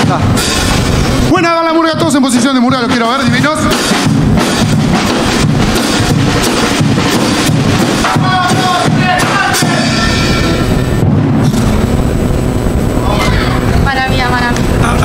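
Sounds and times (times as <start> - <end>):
drums and cymbals playing a beat: 0.0 - 11.9.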